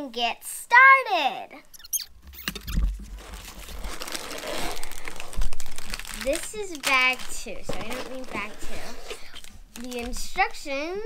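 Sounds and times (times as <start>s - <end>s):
cardboard box being opened: 2.7s - 6.3s
plastic bags crinkling: 2.7s - 10.6s.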